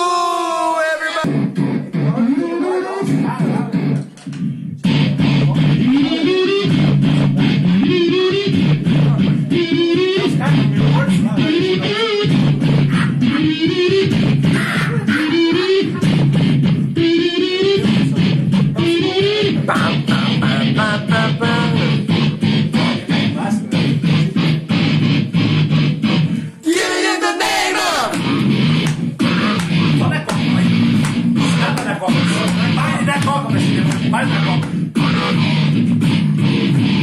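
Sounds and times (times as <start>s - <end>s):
distorted voice imitating guitar: 0.8s - 37.0s.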